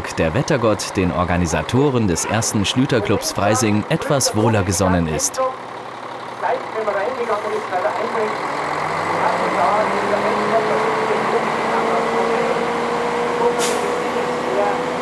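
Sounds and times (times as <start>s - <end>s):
tractor engine revving: 0.0s - 15.0s
crowd chatter: 1.4s - 5.6s.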